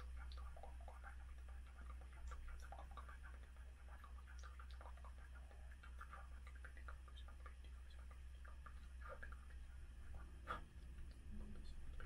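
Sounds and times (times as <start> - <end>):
mouth and lip clicks: 0.0 - 11.2
low steady hum: 0.0 - 12.0.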